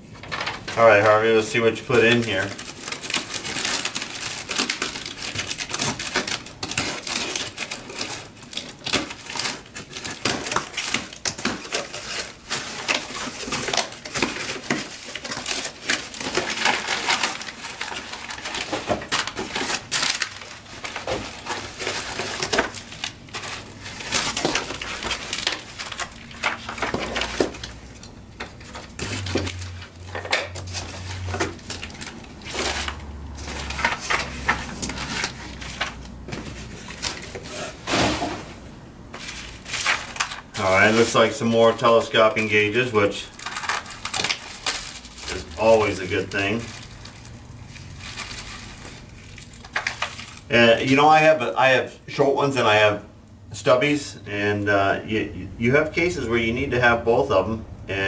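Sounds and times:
cardboard and paper rustling: 0.2 - 51.3.

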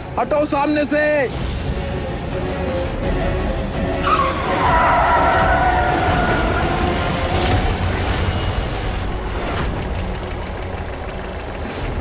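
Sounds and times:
car tyres screeching: 4.0 - 10.7
low engine rumble: 5.7 - 12.0.

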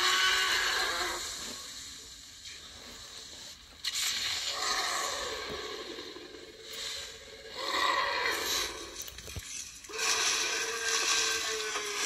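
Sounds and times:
creature sounds: 4.0 - 9.1, 9.9 - 12.0.

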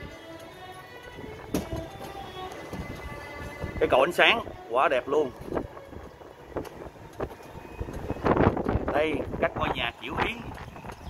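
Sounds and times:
low road rumble: 0.0 - 11.0
wind noise on microphone: 0.0 - 11.0.

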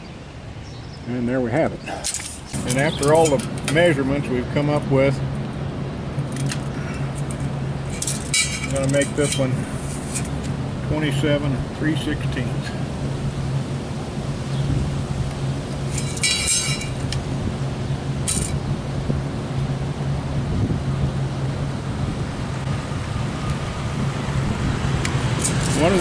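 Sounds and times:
low machine hum: 0.0 - 26.0
high rattle: 6.3 - 10.4, 15.9 - 17.1.

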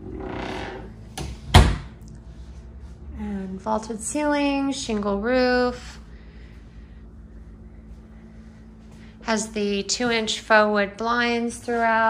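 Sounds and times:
door closing thud: 1.2 - 1.9.

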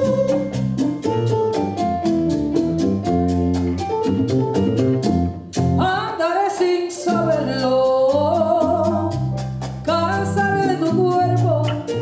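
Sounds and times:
latin jazz band playing: 0.0 - 12.0
woman singing: 5.8 - 9.2, 9.9 - 12.0.

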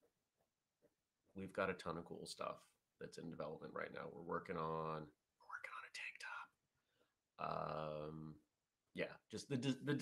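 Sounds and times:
man whispering: 5.4 - 6.6.

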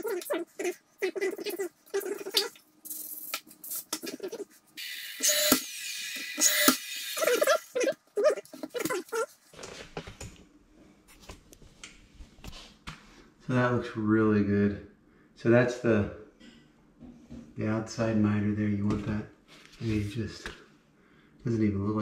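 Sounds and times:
nail gun whirring hiss: 4.8 - 7.2.

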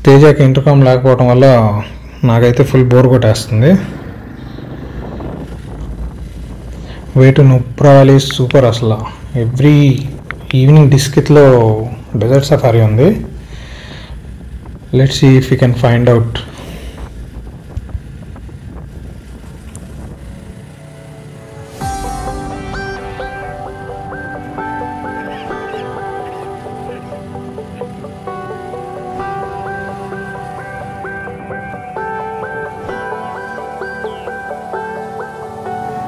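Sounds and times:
wind and road noise: 0.7 - 36.0
motorcycle engine running: 3.9 - 7.2, 14.1 - 15.0, 17.0 - 35.0
music: 18.5 - 36.0.

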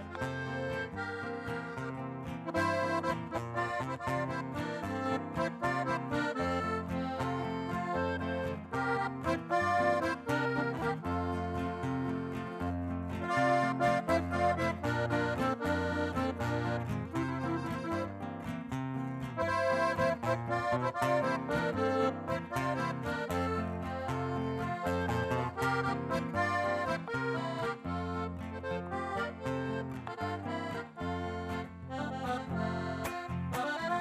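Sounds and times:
button accordion melody: 0.0 - 34.0
guitar: 0.0 - 34.0.

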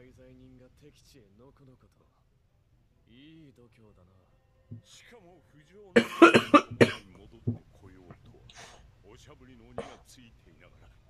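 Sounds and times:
man coughing: 6.0 - 7.1, 9.8 - 10.1.

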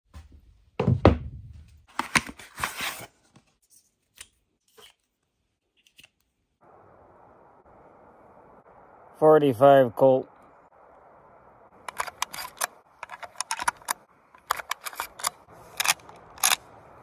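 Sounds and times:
steady low hiss: 6.6 - 13.0.

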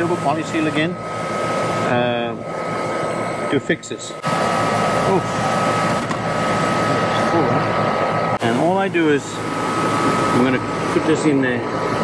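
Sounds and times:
air conditioner whirring hum: 0.0 - 12.0.

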